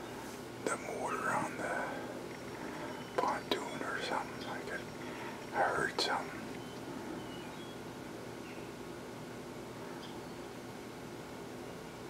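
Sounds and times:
man whispering: 0.6 - 2.2, 3.1 - 6.6.

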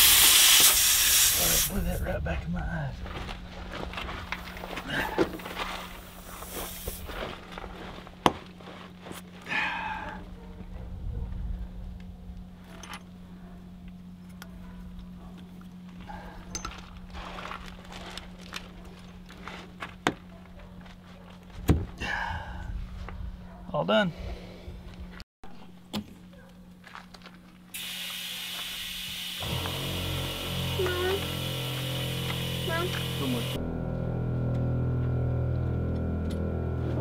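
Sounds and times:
steady low hum: 0.8 - 26.8, 27.4 - 37.0.

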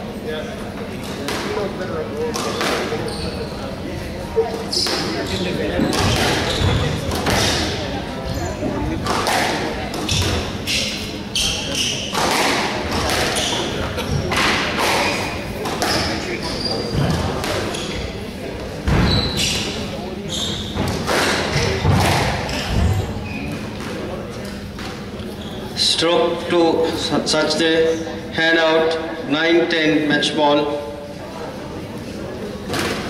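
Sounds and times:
shoes squeaking on wooden floor: 3.0 - 3.7, 4.6 - 7.7, 15.0 - 18.2, 19.0 - 21.8, 25.2 - 25.8
squash ball knocks: 20.8 - 23.0.

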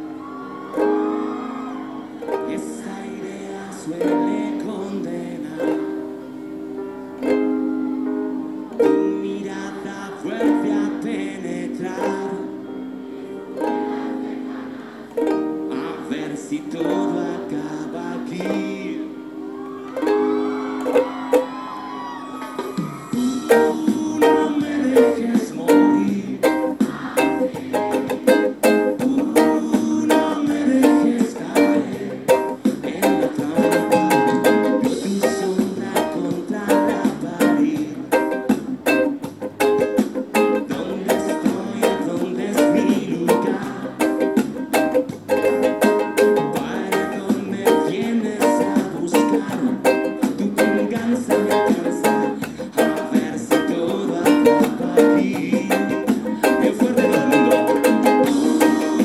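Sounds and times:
ukulele strumming: 0.0 - 59.0.

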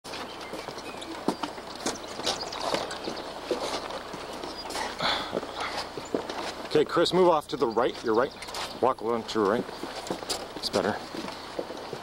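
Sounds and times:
footsteps on bridge deck: 0.1 - 12.0.

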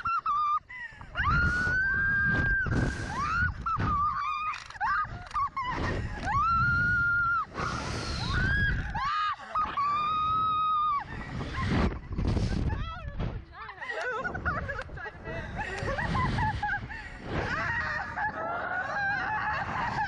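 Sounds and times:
women laughing: 0.0 - 1.3, 2.5 - 6.7, 10.8 - 20.0
women screaming: 0.0 - 11.6, 17.4 - 20.0
wind noise on microphone: 1.0 - 20.0.

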